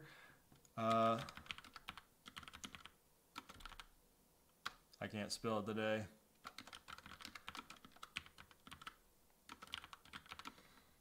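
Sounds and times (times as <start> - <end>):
typing on computer keyboard: 0.8 - 3.9, 6.4 - 10.6.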